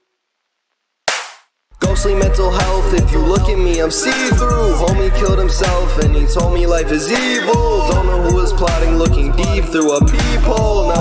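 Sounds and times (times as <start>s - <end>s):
sharp crack: 1.1s - 1.5s
hip-hop beat: 1.1s - 11.0s.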